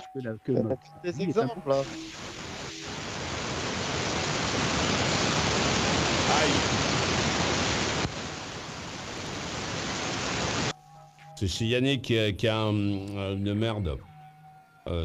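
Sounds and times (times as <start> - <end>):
host talking: 0.0 - 2.0, 11.4 - 14.0
phone line static hiss: 1.1 - 11.4.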